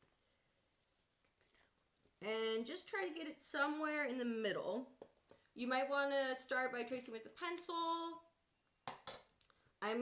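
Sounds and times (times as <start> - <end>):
woman speaking: 2.2 - 5.0, 5.6 - 8.3.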